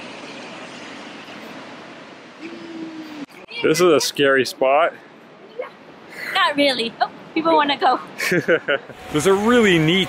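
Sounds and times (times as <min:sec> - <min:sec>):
flowing water rushing: 0:00.0 - 0:10.0.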